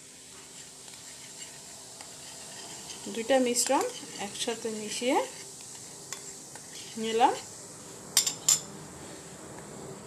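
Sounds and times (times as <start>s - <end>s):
mixture fizzing softly: 0.0s - 7.9s.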